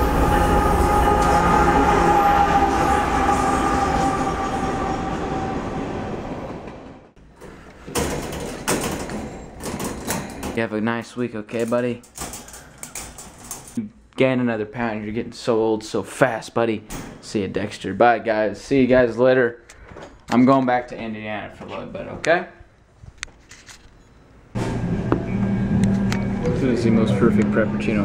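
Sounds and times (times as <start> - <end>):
hand rattling wire crate bars: 7.9 - 10.7, 11.5 - 13.8.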